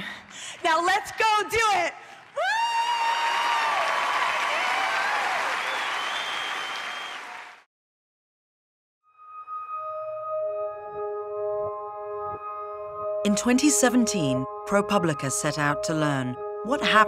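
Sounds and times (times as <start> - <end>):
audience cheering and applauding: 1.6 - 7.7
woman shouting woo: 2.4 - 3.8
soft ambient music: 9.1 - 17.0.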